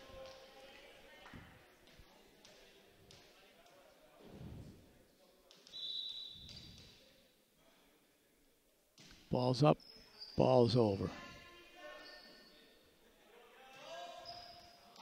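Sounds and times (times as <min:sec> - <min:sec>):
short high whistle: 0:05.7 - 0:06.8.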